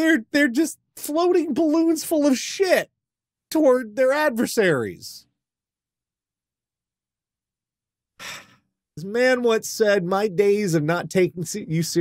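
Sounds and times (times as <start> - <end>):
person speaking: 0.0 - 2.9, 9.0 - 12.0
sharp intake of breath: 8.2 - 8.6.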